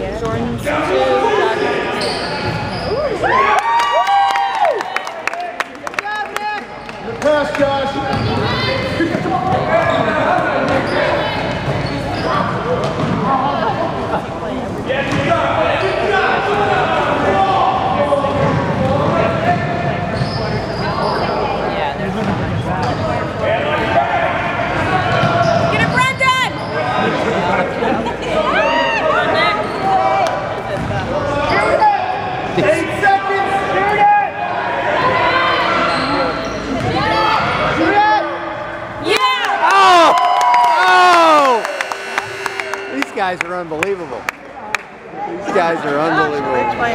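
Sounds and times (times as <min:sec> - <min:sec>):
voices of players and spectators: 0:00.0 - 0:46.9
shouts and chatter: 0:00.7 - 0:12.7, 0:23.3 - 0:46.9.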